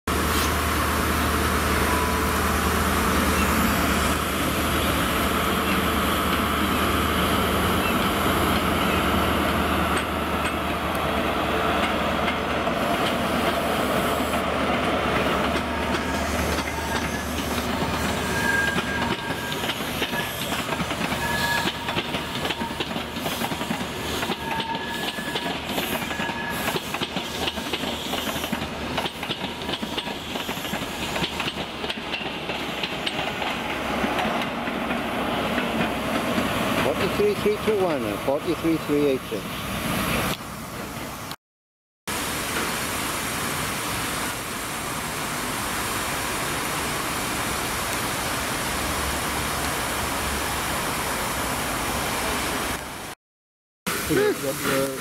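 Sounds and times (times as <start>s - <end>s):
diesel train engine running: 0.1s - 41.3s
train wheels clattering over rail joints: 14.3s - 38.1s
high wheel squeals: 16.1s - 27.0s.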